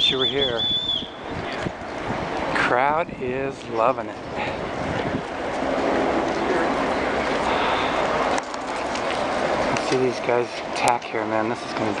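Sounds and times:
wind on microphone: 0.0 - 9.8
murmur of spectators' voices: 0.0 - 12.0.

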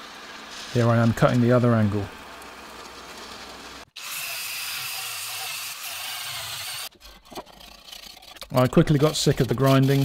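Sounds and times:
bandsaw cutting steel: 2.5 - 10.0
power tool grinding steel: 2.8 - 10.0.

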